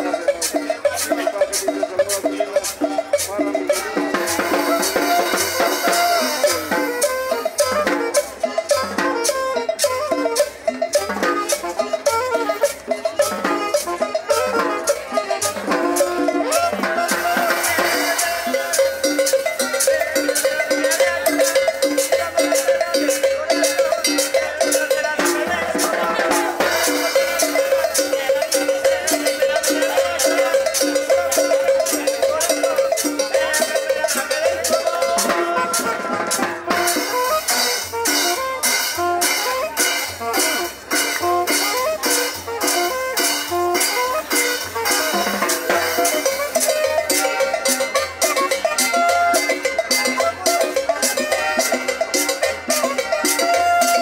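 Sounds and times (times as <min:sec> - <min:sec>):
bright metal percussion: 0:00.0 - 0:54.0
congas: 0:00.0 - 0:54.0
hand drums: 0:00.0 - 0:54.0.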